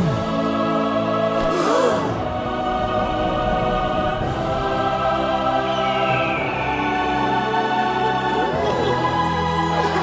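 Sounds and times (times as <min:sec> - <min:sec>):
choir holding sustained notes: 0:00.0 - 0:10.0.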